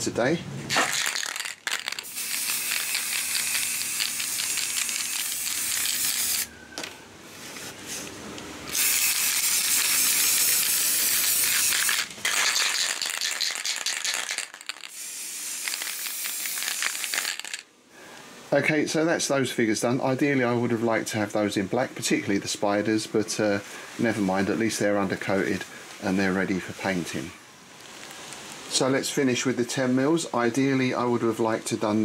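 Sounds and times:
aerosol spray can hissing: 1.2 - 6.5, 8.7 - 17.6.

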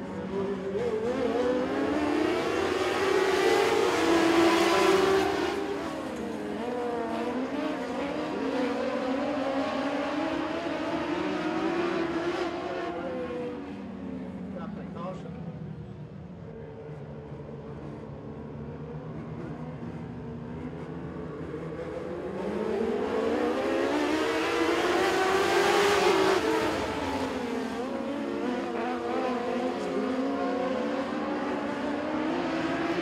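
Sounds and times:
race car engines: 0.0 - 33.0.

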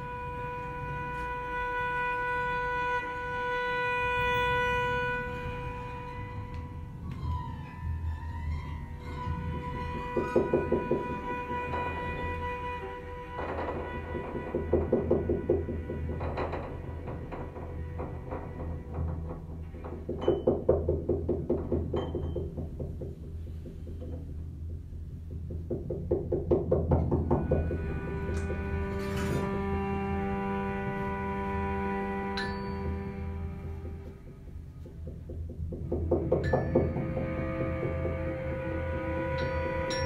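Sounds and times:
cello: 0.0 - 40.0
percussion: 0.0 - 40.0
violin: 0.0 - 40.0.

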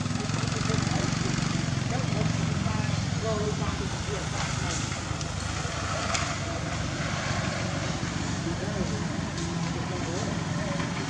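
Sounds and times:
faint wavering voices: 0.0 - 11.0
low outdoor rumble: 0.0 - 11.0.

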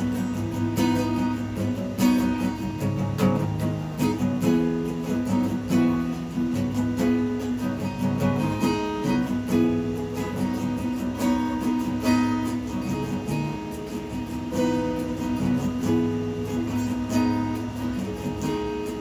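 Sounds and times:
acoustic guitar strumming: 0.0 - 19.0.

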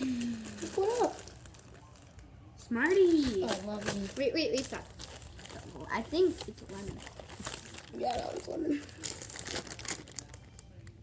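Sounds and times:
plastic packaging crinkling: 0.0 - 2.3, 2.9 - 11.0.

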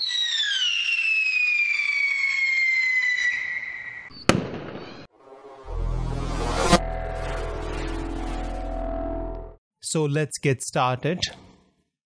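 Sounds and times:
whistle falling in pitch: 0.0 - 4.4
low swell of noise: 5.2 - 9.4.

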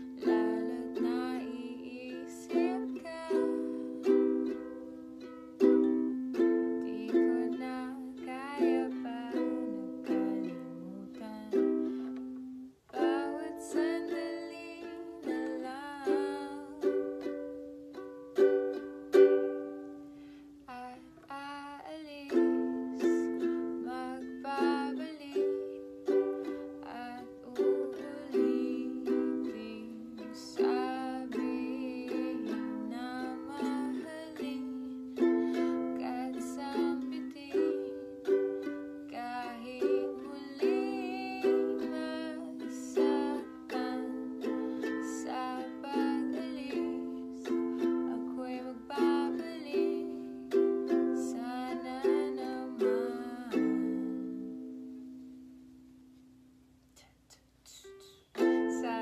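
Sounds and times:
woman singing: 0.0 - 17.6, 20.6 - 54.8, 57.0 - 59.0
ukulele strumming chords: 0.0 - 56.7, 57.7 - 59.0.

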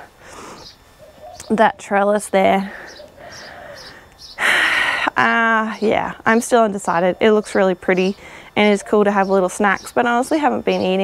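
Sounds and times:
woman breathing loudly: 0.0 - 0.7, 2.6 - 5.2, 8.2 - 8.6
woman speaking: 1.4 - 3.0, 4.4 - 11.0.

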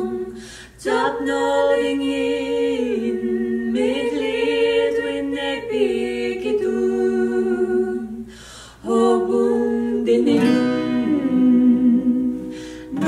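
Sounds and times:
acoustic guitar: 0.0 - 13.0
women singing held notes: 0.0 - 13.0.

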